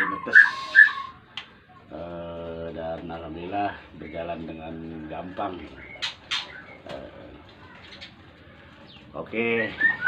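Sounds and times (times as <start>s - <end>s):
faint bird calls: 0.0s - 1.3s, 5.2s - 9.0s.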